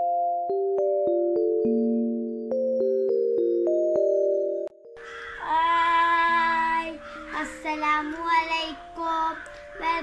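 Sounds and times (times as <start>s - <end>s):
keyboard tune: 0.0s - 10.0s
girl singing: 5.4s - 10.0s.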